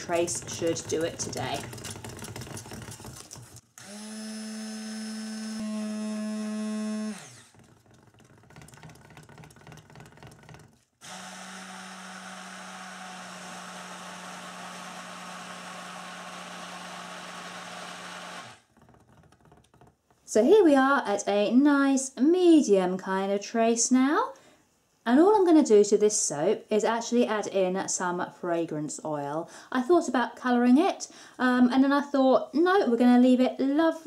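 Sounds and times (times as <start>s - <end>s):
stick blender whirring: 0.0s - 19.8s.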